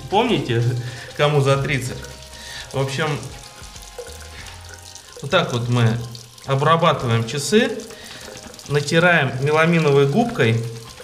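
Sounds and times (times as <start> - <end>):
tap water running into sink: 0.0 - 11.0.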